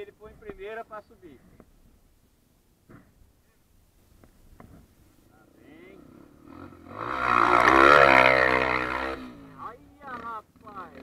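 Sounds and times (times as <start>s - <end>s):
dirt bike engine revving hard: 6.0s - 11.0s.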